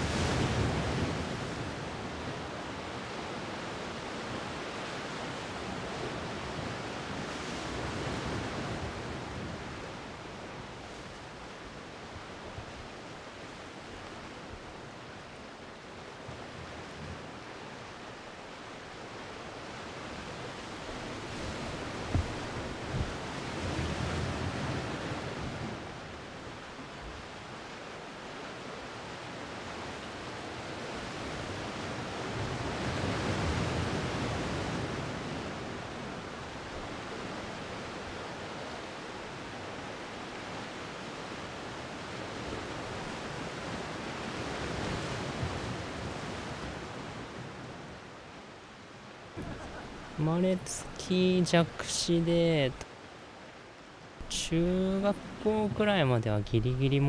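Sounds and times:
surf washing onto rocky shore: 19.7s - 26.1s, 49.4s - 52.9s, 54.2s - 57.0s.

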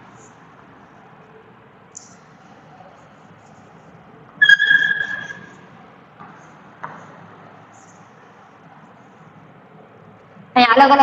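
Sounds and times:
high-pitched ringing tone: 4.4s - 5.6s.

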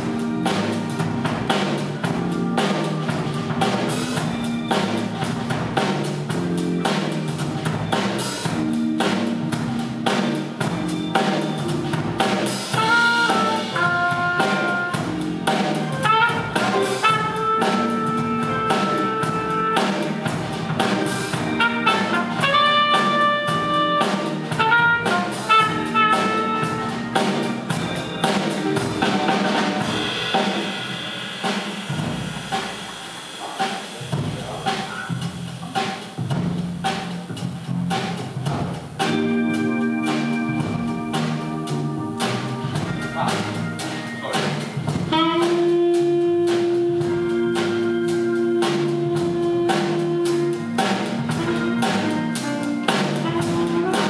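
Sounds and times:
jazz band playing: 0.0s - 54.0s
trumpet and saxophone melody: 12.6s - 30.2s, 45.0s - 54.0s.

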